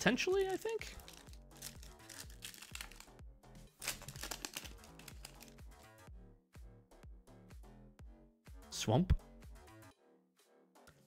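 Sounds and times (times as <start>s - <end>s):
quiet background music: 0.0s - 11.0s
trading cards being handled: 0.1s - 3.1s, 3.7s - 5.8s
foil wrapper crinkling: 0.4s - 3.1s, 3.8s - 5.6s.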